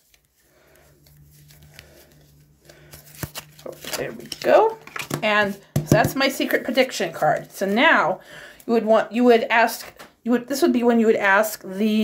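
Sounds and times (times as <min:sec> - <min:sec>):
playing cards rustling and clicking: 0:00.0 - 0:07.6.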